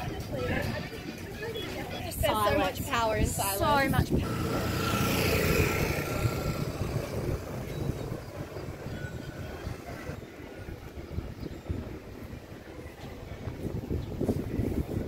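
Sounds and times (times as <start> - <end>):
road traffic rumble: 0.0 - 15.0
wind on microphone: 0.0 - 15.0.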